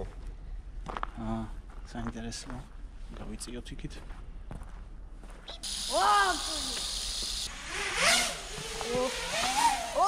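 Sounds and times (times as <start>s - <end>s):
quadcopter motors whining: 5.6s - 10.0s
steady high hiss: 5.6s - 10.0s.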